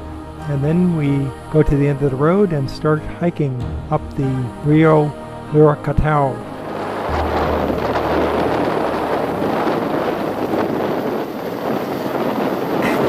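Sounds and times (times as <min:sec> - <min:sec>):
wind rumble on microphone: 0:00.0 - 0:13.0
river rushing over rocks: 0:06.5 - 0:13.0.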